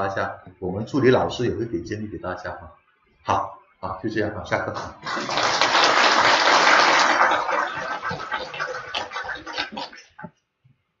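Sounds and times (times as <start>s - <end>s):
audience clapping: 5.0s - 10.2s.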